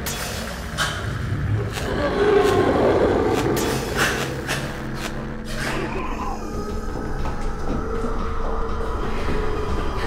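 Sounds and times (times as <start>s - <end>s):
low rumbling drone: 0.4s - 10.0s.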